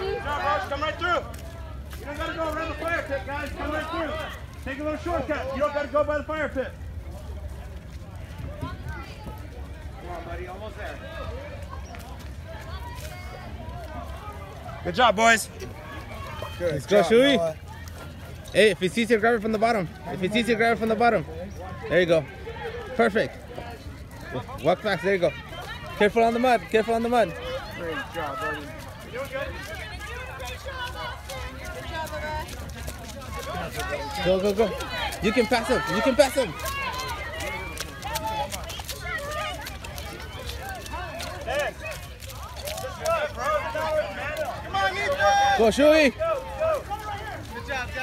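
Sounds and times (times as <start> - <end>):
faint background chatter: 0.0 - 48.0
spectators talking and calling out: 0.0 - 48.0.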